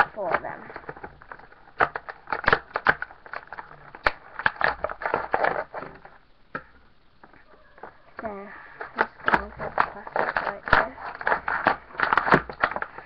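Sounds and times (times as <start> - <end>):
plastic packaging crackling: 0.0 - 13.0.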